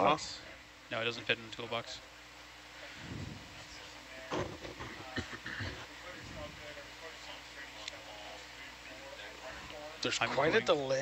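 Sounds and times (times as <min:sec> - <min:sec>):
low electrical hum: 0:00.0 - 0:11.0
faint indistinct voices: 0:01.8 - 0:11.0.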